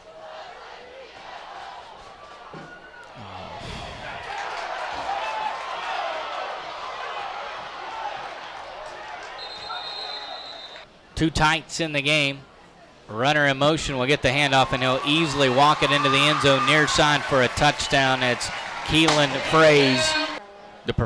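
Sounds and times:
stadium crowd voices: 0:00.0 - 0:21.0
high whistle: 0:09.4 - 0:10.9.

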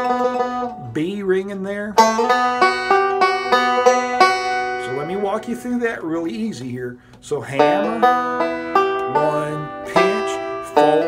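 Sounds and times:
banjo picked slowly: 0:00.0 - 0:06.3, 0:07.3 - 0:11.0.

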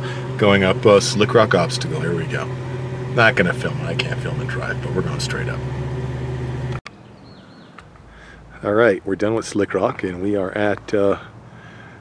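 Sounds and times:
car engine humming: 0:00.0 - 0:12.0
open-air background: 0:00.0 - 0:12.0
bird chirp: 0:06.9 - 0:07.9.

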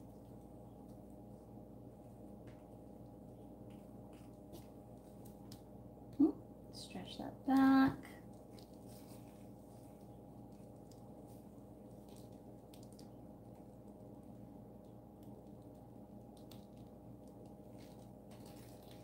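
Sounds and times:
faint room hum: 0:00.0 - 0:19.0.

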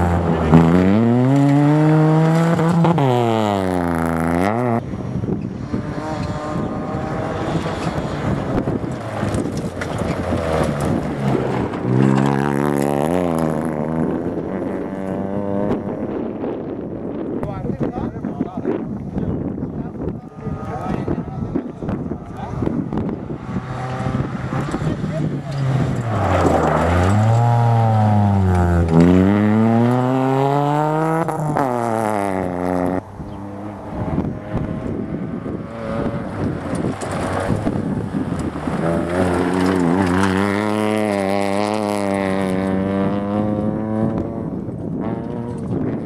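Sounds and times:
rally car engine revving: 0:00.0 - 0:17.3, 0:19.9 - 0:46.0
car accelerating: 0:00.0 - 0:17.5, 0:19.9 - 0:46.0.

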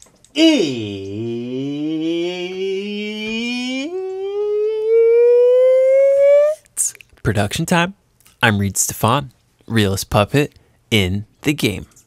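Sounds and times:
person singing a rising note: 0:00.4 - 0:06.6.

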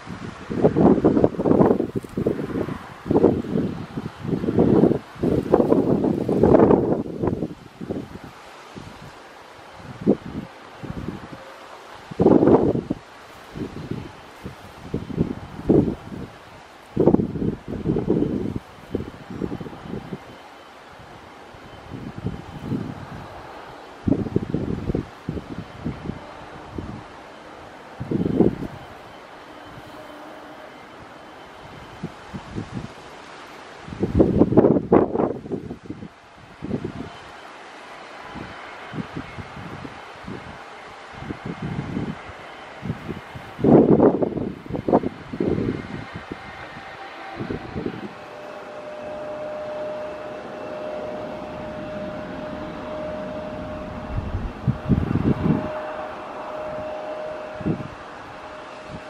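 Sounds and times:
jet airliner landing: 0:00.0 - 0:59.0
steady engine whine: 0:00.0 - 0:59.0
wind buffeting microphone: 0:00.0 - 0:59.0.

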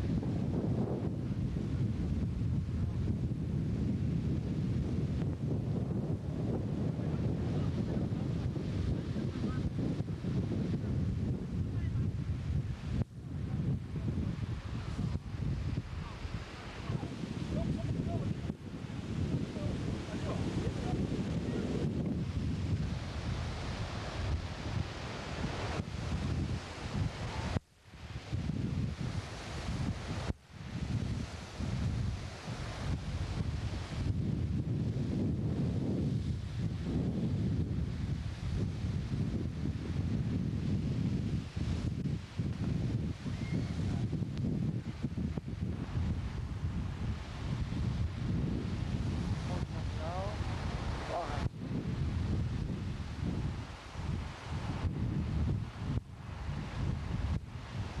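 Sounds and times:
wind buffeting microphone: 0:00.0 - 0:58.0
surf crashing over rocks: 0:12.8 - 0:58.0.

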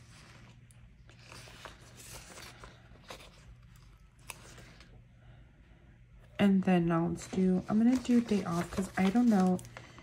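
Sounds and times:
paper rustling: 0:00.0 - 0:04.9, 0:07.2 - 0:10.0
low steady hum: 0:00.0 - 0:10.0.

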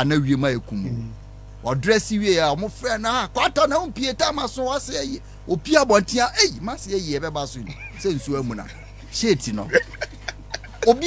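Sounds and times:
low hum: 0:00.0 - 0:11.0
people talking: 0:00.0 - 0:11.0.

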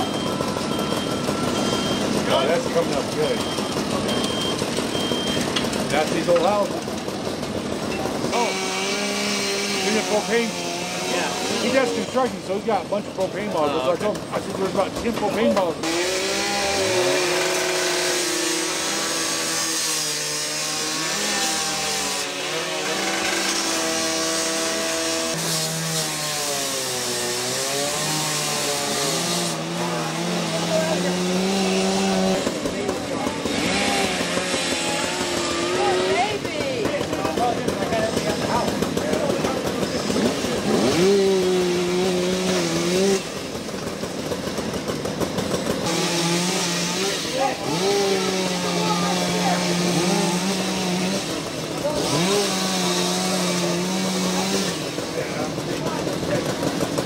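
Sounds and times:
chainsaw running: 0:00.0 - 0:57.0.

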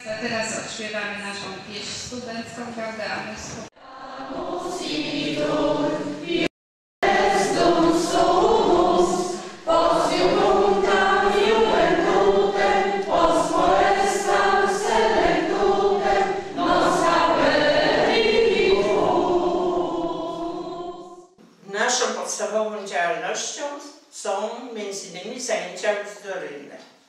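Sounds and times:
audience singing together: 0:03.8 - 0:21.3.

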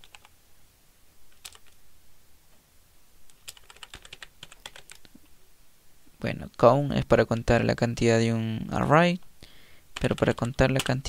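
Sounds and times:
computer keyboard typing: 0:00.0 - 0:00.3, 0:01.3 - 0:01.8, 0:03.3 - 0:05.1, 0:10.0 - 0:11.0.

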